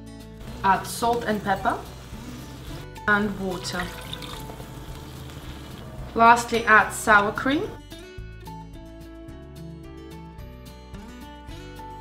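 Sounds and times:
water pouring into sauce: 3.5s - 5.9s.

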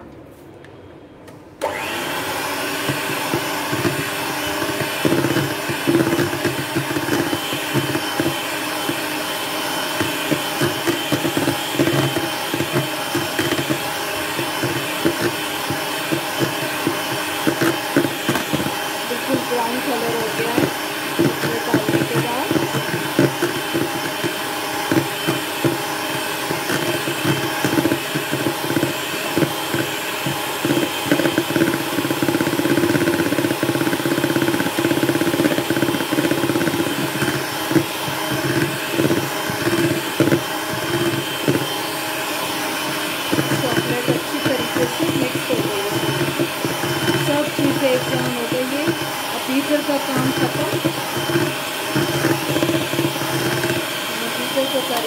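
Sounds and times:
electric hand mixer running: 1.6s - 55.0s.

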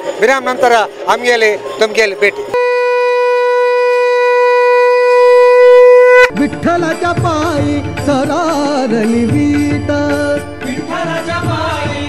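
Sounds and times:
conch shell blown: 2.6s - 6.4s.

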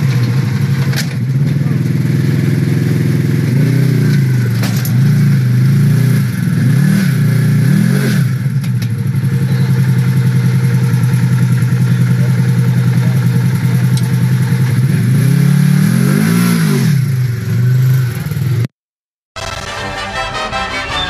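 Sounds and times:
engine running under load: 0.0s - 18.7s.

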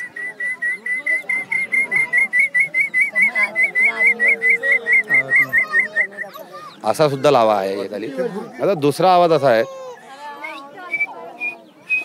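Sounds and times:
man whistling quail call: 0.0s - 6.4s, 10.4s - 12.0s.

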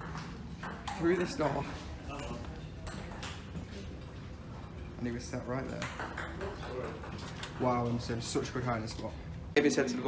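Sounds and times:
table tennis ball clicking: 5.8s - 7.7s.

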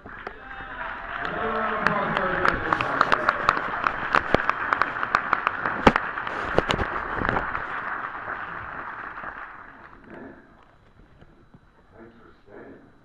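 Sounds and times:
audience applauding: 0.0s - 10.3s.

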